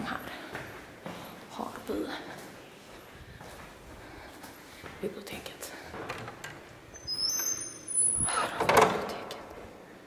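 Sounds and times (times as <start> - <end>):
wooden door squeaking: 6.1 - 9.0.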